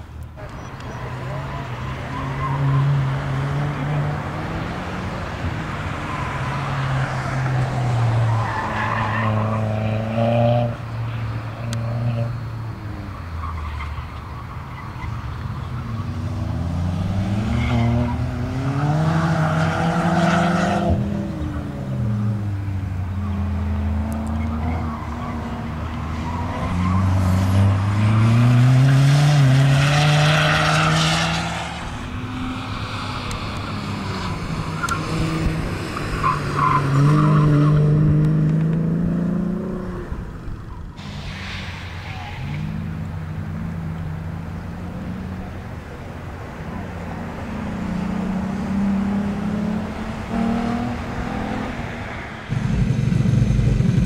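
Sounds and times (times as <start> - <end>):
car engine revving: 14.7 - 45.6, 47.0 - 54.0.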